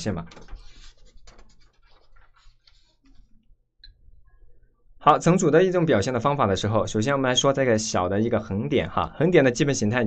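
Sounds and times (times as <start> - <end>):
paper rustling: 0.3 - 3.3.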